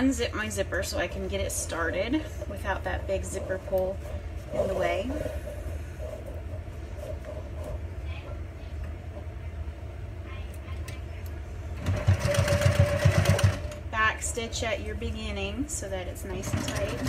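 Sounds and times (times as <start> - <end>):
sewing machine stitching: 11.8 - 13.8, 16.4 - 17.0.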